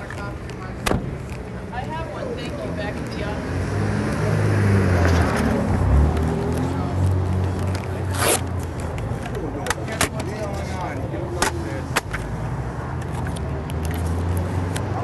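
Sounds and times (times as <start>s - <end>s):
sharp clicks and scrapes: 13.0s - 14.9s.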